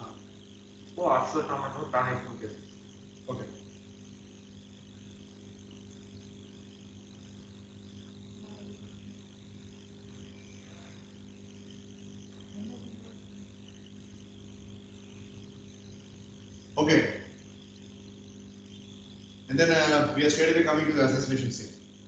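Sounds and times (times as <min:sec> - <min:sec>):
steady low hum: 0:00.0 - 0:22.0
faint high hiss: 0:00.9 - 0:21.8.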